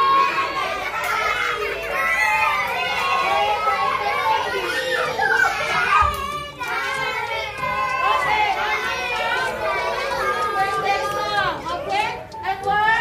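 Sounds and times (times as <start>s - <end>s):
adults talking: 0.0s - 13.0s
children chattering: 0.0s - 13.0s.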